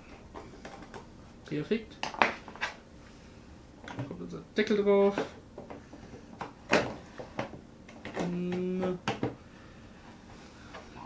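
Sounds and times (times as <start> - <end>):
person humming: 8.2 - 9.1.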